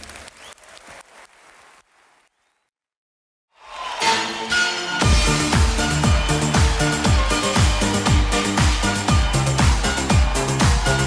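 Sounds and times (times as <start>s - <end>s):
audience applause: 0.0s - 2.4s.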